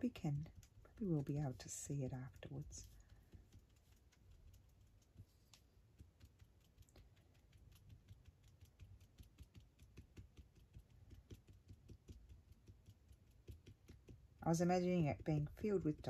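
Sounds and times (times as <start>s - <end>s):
marker tip tapping on paper: 7.5s - 16.0s.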